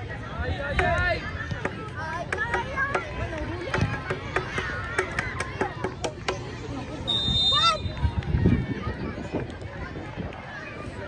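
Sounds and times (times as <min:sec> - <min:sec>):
players and spectators calling out: 0:00.0 - 0:11.0
short high whistle: 0:07.1 - 0:08.0.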